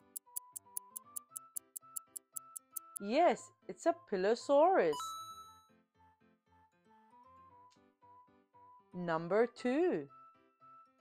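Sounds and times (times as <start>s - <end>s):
clock ticking: 0.0s - 3.0s
simple jingle tune: 0.0s - 3.0s.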